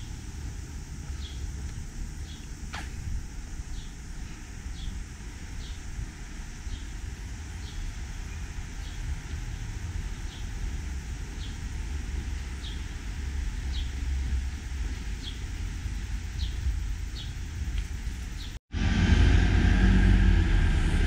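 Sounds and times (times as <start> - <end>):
city street traffic: 0.0 - 21.0
low outdoor rumble: 0.0 - 21.0
faint high chirp: 7.6 - 9.0.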